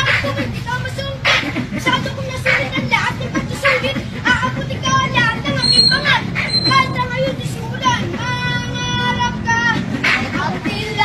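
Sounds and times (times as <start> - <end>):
high singing voice: 0.0 - 11.0
steady low rumble: 0.0 - 11.0.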